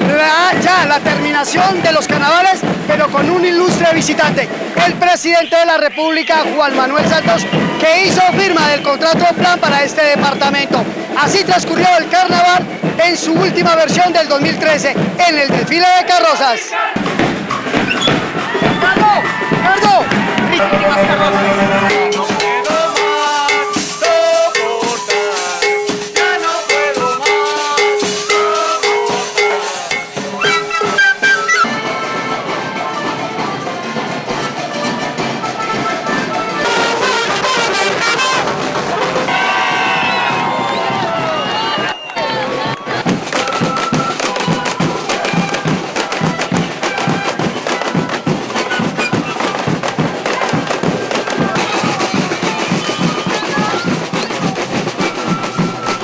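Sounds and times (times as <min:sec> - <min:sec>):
steady drumbeat: 0:00.0 - 0:05.4, 0:06.3 - 0:56.0
crowd voices and shouting: 0:00.0 - 0:56.0
parade band with drums and brass: 0:00.0 - 0:56.0.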